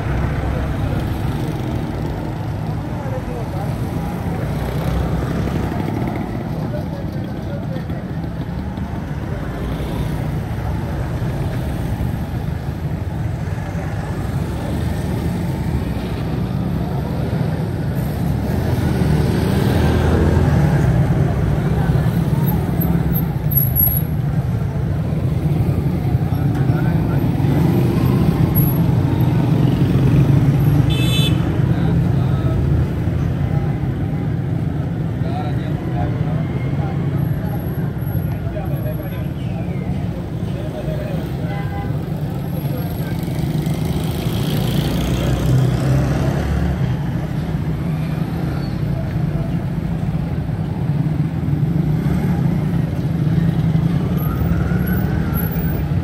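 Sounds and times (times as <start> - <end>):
motorcycles and rickshaws passing: 0.0 - 56.0
people's voices: 0.0 - 56.0.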